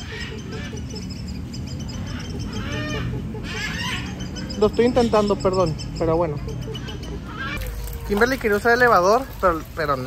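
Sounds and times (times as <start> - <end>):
birds calling: 0.0 - 10.0.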